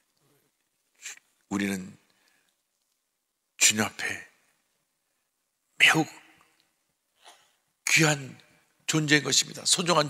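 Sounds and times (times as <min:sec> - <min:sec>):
man preaching: 0:01.0 - 0:02.1, 0:03.6 - 0:04.4, 0:05.8 - 0:06.4, 0:07.8 - 0:10.0.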